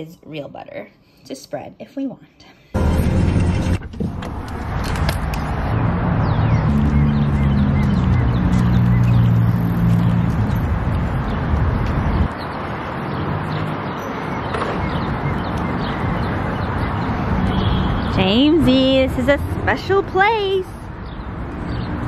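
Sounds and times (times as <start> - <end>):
car road noise rumble: 2.8 - 13.8.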